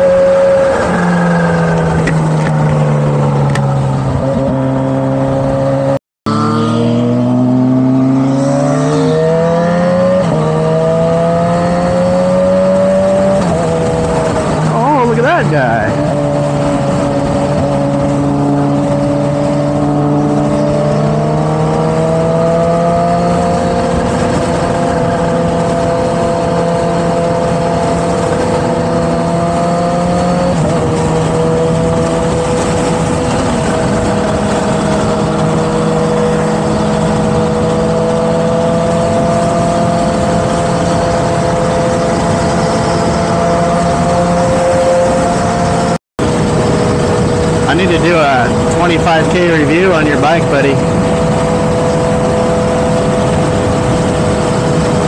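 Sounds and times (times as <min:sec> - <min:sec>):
motorcycle engine cruising: 0:00.0 - 0:55.0
wind noise: 0:07.1 - 0:55.0.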